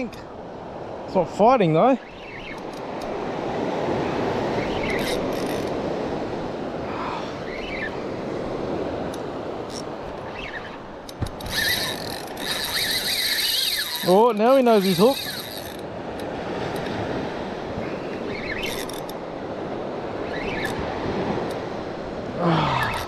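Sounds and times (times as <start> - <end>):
fishing reel drag screeching: 4.6 - 5.7, 11.4 - 15.8, 18.3 - 19.1, 20.2 - 20.8.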